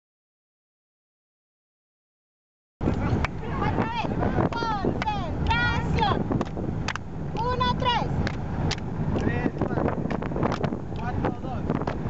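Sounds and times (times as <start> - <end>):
van rumble and wind: 2.8 - 12.0
hand claps: 4.5 - 5.6, 6.4 - 7.5, 8.2 - 11.2.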